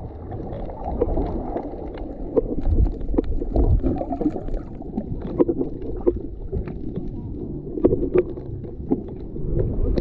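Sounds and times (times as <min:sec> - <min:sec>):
low underwater rumble: 0:00.0 - 0:10.0
small underwater clicks and pops: 0:00.0 - 0:10.0.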